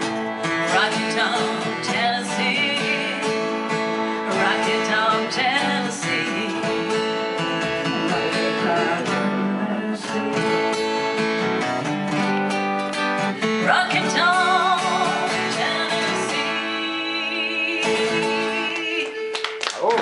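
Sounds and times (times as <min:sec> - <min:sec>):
woman singing: 0:00.0 - 0:10.6, 0:13.2 - 0:19.7
strummed acoustic guitar: 0:00.0 - 0:19.3
fiddle: 0:00.0 - 0:19.6.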